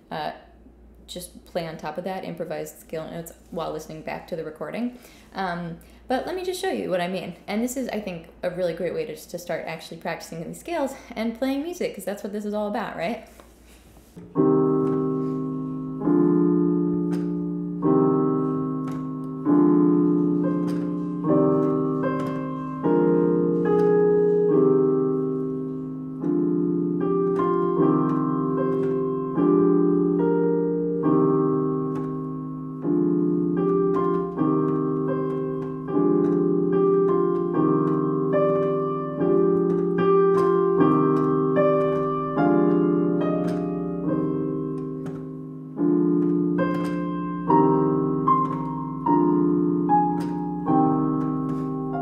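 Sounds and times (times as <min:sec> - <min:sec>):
piano melody: 0:14.2 - 0:52.0
slow piano chords: 0:14.2 - 0:52.0.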